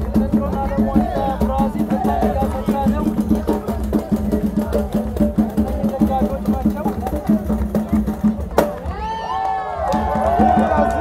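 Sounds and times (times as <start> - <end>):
voices singing: 0.0 - 8.1
clacking percussion: 0.0 - 9.1
hand drum beating: 0.0 - 9.1.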